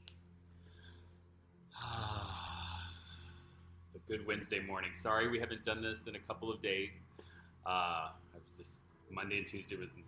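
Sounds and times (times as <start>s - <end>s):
faint steady hum: 0.0s - 10.0s
man sighing: 1.7s - 3.4s.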